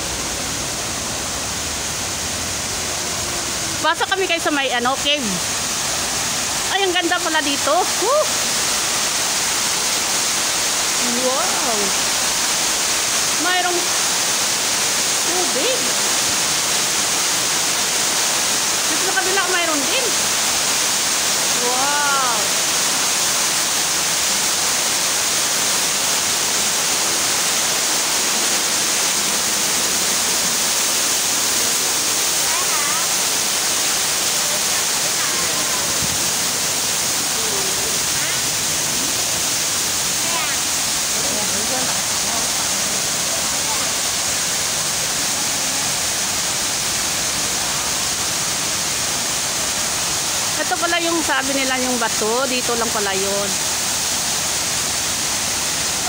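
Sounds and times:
waterfall rushing into pool: 0:00.0 - 0:56.0.

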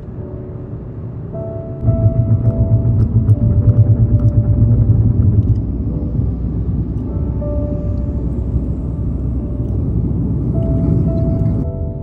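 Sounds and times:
faint music notes: 0:00.0 - 0:12.0
car rumbling: 0:00.8 - 0:12.0.

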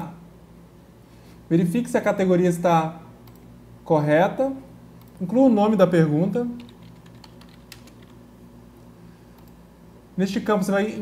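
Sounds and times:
faint steady hum: 0:00.0 - 0:11.0
light keyboard keystrokes: 0:06.6 - 0:08.2.

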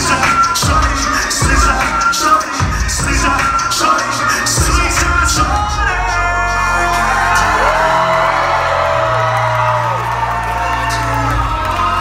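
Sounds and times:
loud live concert music: 0:00.0 - 0:12.0
audience whooping: 0:06.6 - 0:12.0.

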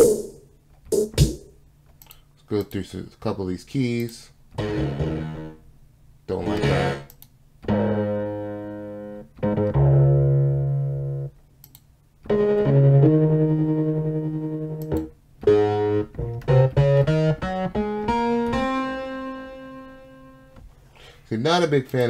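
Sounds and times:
electric piano synth playing: 0:04.6 - 0:05.6, 0:06.4 - 0:11.3, 0:12.2 - 0:20.6.

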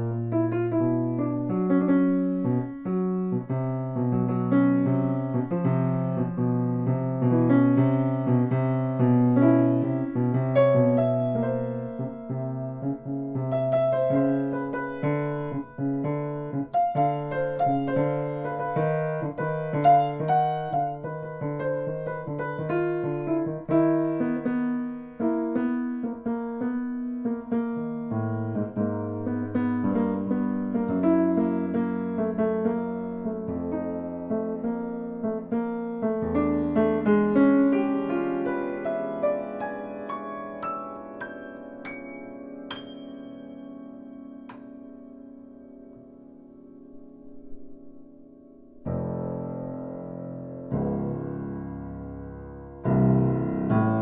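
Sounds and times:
solo piano improvisation: 0:00.0 - 0:54.0.

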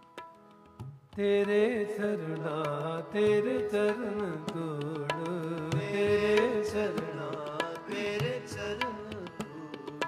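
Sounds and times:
harmoniums holding a melody: 0:00.0 - 0:10.0
tabla strokes: 0:00.0 - 0:10.0
person singing: 0:01.2 - 0:10.0.

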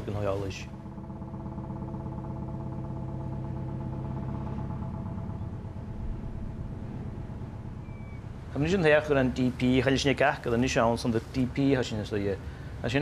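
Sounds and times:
ship engines humming: 0:00.0 - 0:13.0.

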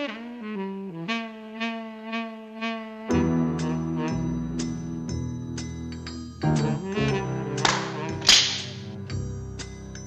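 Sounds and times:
jazzy cartoon music: 0:00.0 - 0:10.0.

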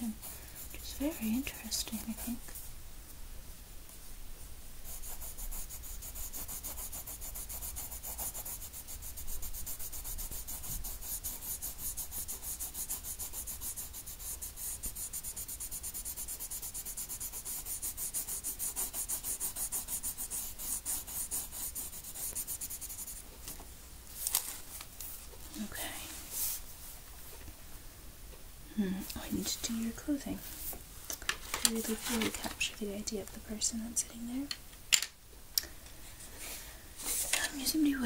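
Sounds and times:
pencil shading on paper: 0:00.1 - 0:02.4, 0:04.8 - 0:23.2.

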